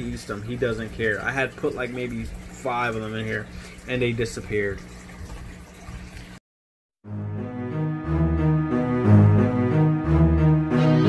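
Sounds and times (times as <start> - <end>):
bubbling water: 0.0 - 6.4
low pump hum: 0.0 - 6.4.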